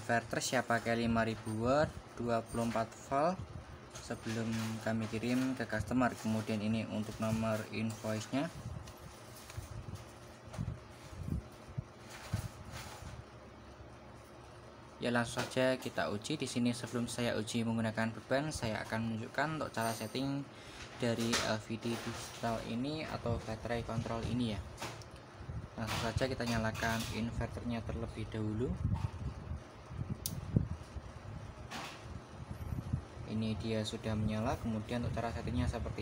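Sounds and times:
low steady background noise: 0.0s - 36.0s
soft handling bump and rustle: 3.9s - 14.6s.

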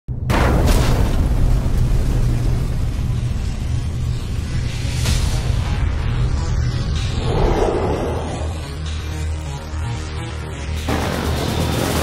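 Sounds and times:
sustained low rumble: 7.1s - 9.0s.

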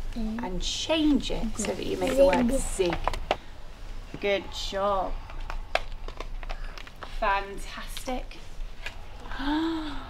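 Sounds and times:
whiteboards and markers clicking: 5.2s - 7.2s.

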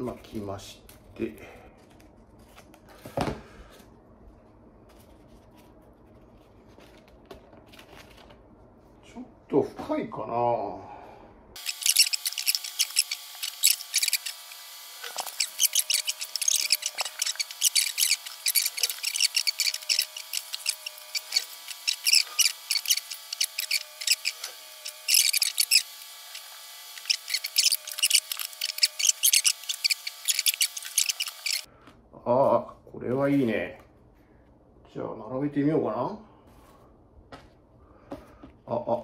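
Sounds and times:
plastic pieces clicking and rubbing: 11.6s - 31.7s.

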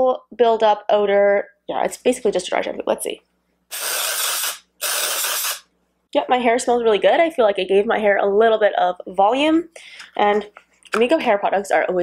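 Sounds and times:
aerosol spray hissing: 3.7s - 5.7s.

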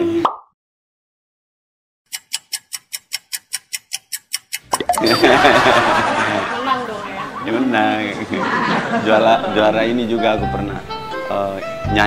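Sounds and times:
clock ticking: 2.1s - 5.3s.

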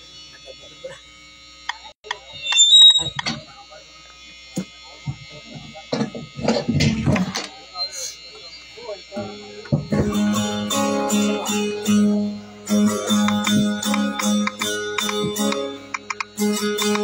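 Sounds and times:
high-pitched whine: 0.0s - 17.0s
people talking: 0.3s - 1.0s, 1.7s - 16.2s.

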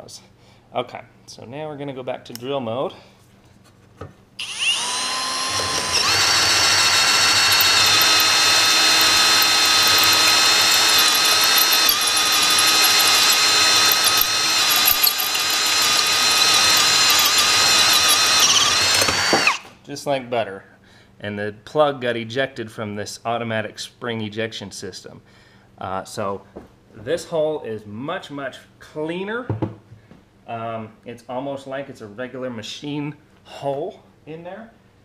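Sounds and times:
cordless drill cutting steel: 4.4s - 19.7s.

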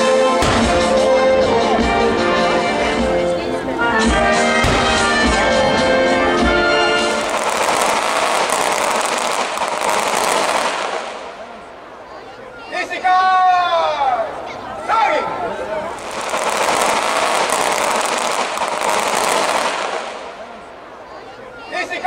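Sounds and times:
brass band music: 0.0s - 11.6s, 15.8s - 20.5s
drumbeat: 0.4s - 3.2s, 4.1s - 11.0s
rushing crackling noise: 6.7s - 11.9s, 15.8s - 20.9s.

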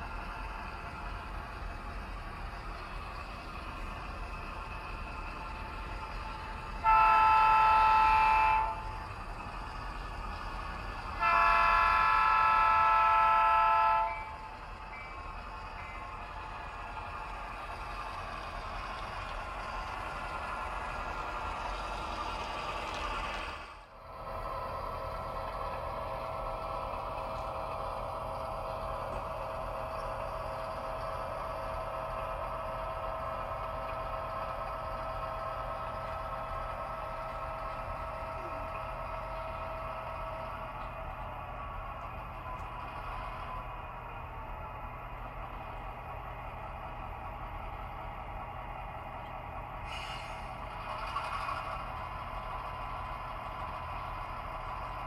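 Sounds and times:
diesel engine rumbling: 0.0s - 55.0s
model locomotive chord horn: 6.8s - 9.0s, 11.1s - 14.5s.

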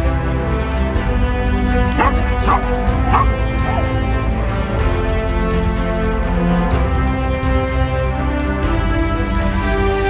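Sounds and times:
background music: 0.0s - 10.0s
dog barking: 1.9s - 4.0s.

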